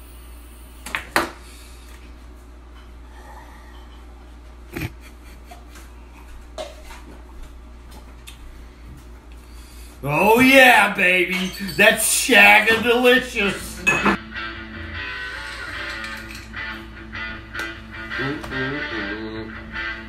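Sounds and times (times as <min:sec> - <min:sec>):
steady low hum: 0:00.0 - 0:14.8.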